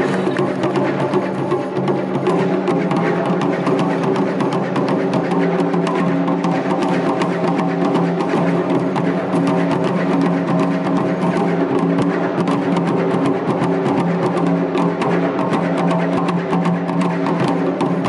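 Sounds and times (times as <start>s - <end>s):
taiko drums fast rhythm: 0.0s - 18.0s.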